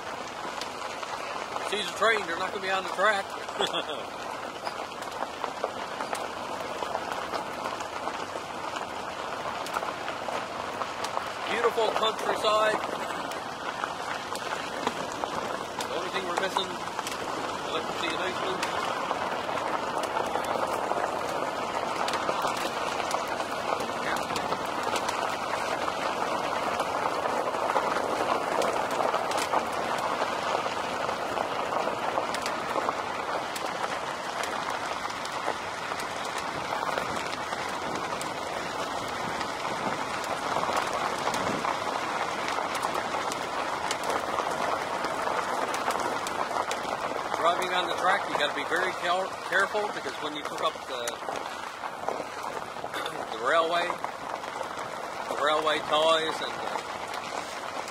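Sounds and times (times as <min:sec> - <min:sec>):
car tyres crunching on gravel: 0:00.0 - 0:57.9.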